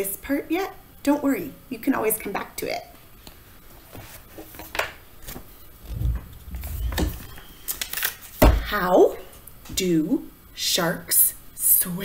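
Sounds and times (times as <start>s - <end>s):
book handling noise: 3.3s - 8.5s
low thuds: 5.8s - 7.5s.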